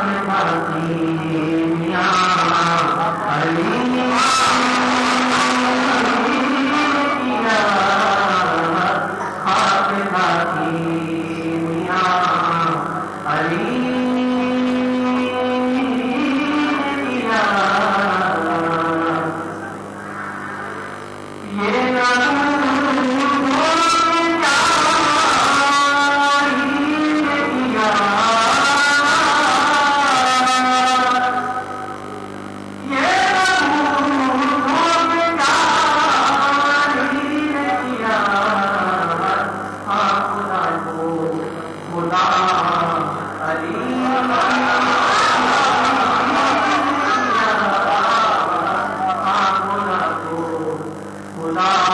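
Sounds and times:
man singing through loudspeakers: 0.0s - 20.0s, 21.4s - 51.9s.

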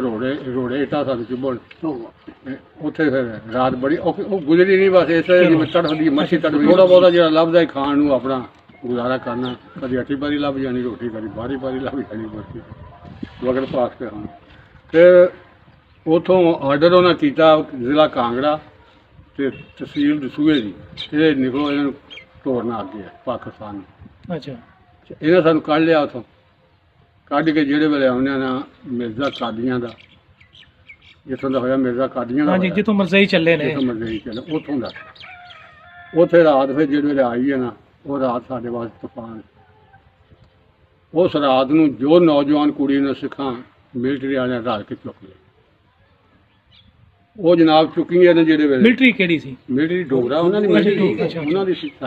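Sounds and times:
elderly man speaking: 0.0s - 26.4s, 31.2s - 35.1s, 36.1s - 39.6s, 47.4s - 52.0s
man talking: 0.0s - 26.4s, 27.2s - 30.0s, 31.2s - 35.0s, 36.2s - 39.6s, 41.1s - 45.5s, 47.4s - 52.0s
rooster crowing: 34.8s - 36.7s.

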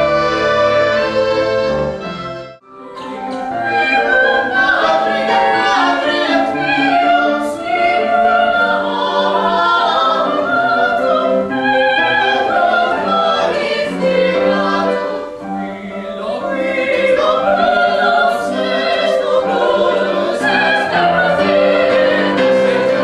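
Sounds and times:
mixed choir singing held notes: 0.0s - 23.0s.

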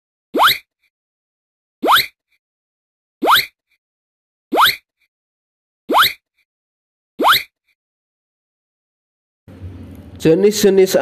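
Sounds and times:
cartoon pop bloops: 0.4s - 0.6s, 1.8s - 2.1s, 3.2s - 3.5s, 7.2s - 7.5s.

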